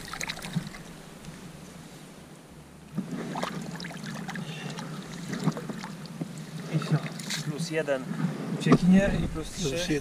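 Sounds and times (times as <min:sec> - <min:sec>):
water splashing and sloshing: 0:00.0 - 0:02.2, 0:02.8 - 0:09.7.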